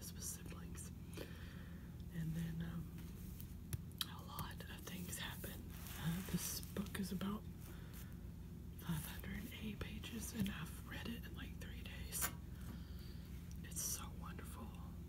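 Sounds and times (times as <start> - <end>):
soft whispering: 0.0 - 1.0, 2.1 - 3.4, 4.0 - 7.7, 8.8 - 12.4, 13.5 - 15.0.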